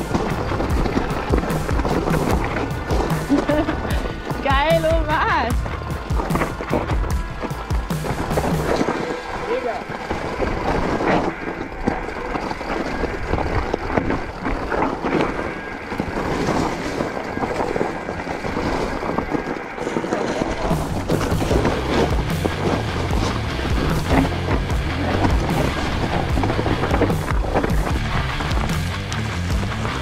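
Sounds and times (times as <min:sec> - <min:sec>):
background music: 0:00.0 - 0:11.9, 0:15.0 - 0:30.0
bike tyres on gravel: 0:00.0 - 0:30.0.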